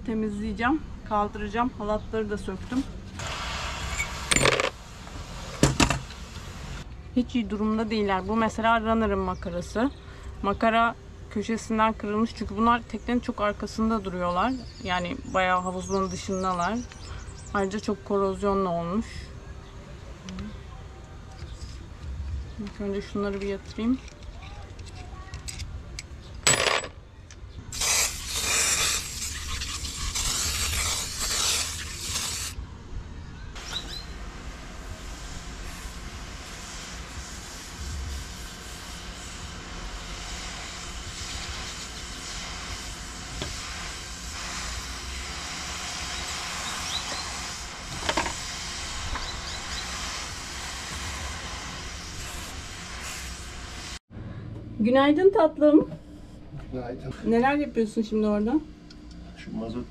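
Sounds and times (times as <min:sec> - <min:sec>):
aerosol can spraying hiss: 0:03.2 - 0:04.3, 0:27.7 - 0:32.6, 0:35.0 - 0:54.0.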